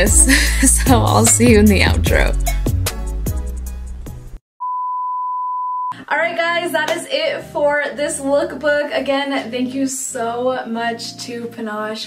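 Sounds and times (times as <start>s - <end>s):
background music: 0.0s - 4.4s, 6.0s - 12.0s
electronic beep: 4.6s - 6.0s.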